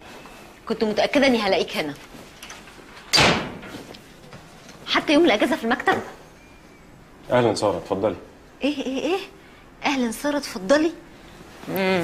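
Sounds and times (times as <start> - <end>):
wooden door shutting: 3.1 - 3.7.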